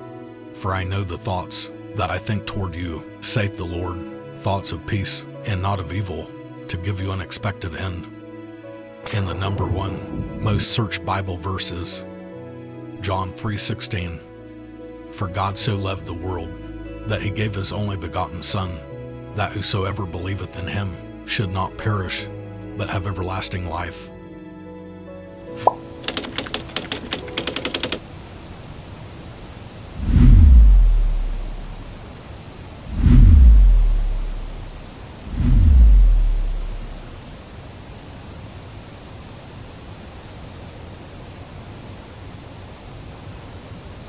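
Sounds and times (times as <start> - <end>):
music: 0.0 - 28.0, 30.0 - 31.9, 32.9 - 37.2
deep cinematic booms: 9.6 - 10.7, 30.0 - 31.9, 32.9 - 37.2
quick ticks: 25.7 - 28.0
steady hiss: 25.7 - 44.0.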